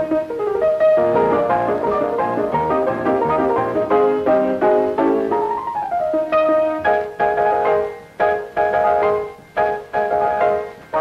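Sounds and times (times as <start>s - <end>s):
fast piano chords: 0.0s - 11.0s.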